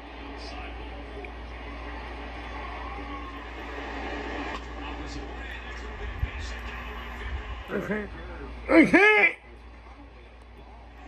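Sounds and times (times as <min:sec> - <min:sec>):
faint crowd noise from tv: 0:00.0 - 0:11.0
steady low hum: 0:00.0 - 0:11.0.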